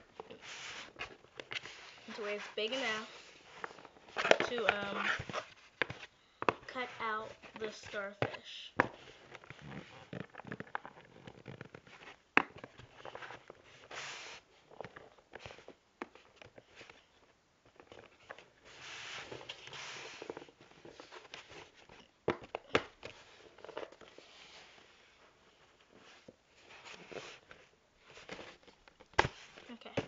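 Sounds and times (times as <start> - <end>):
soft rustling and scraping: 0.0 - 30.0.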